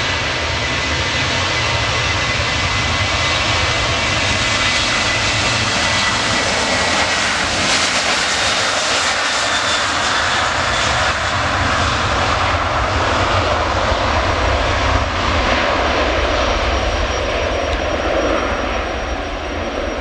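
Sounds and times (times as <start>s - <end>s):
jet engines running: 0.0s - 20.0s.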